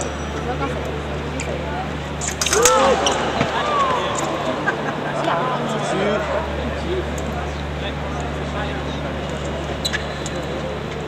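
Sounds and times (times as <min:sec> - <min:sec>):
steady low hum: 0:00.0 - 0:11.0
voices echoing in a hall: 0:00.0 - 0:11.0.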